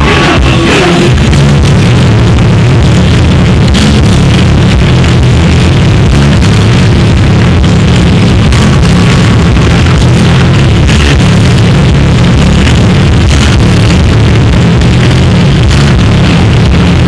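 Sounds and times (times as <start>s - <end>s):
heavy metal band playing: 0.0s - 17.0s.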